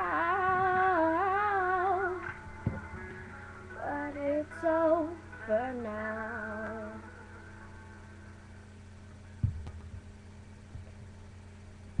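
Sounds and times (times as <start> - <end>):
low steady hum with hiss: 0.0 - 12.0
soft low thumps: 2.3 - 3.2, 9.2 - 12.0.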